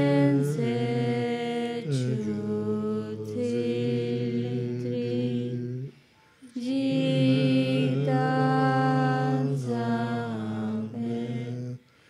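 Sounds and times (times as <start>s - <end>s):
person chanting in low voice: 0.0s - 5.9s, 6.5s - 11.9s.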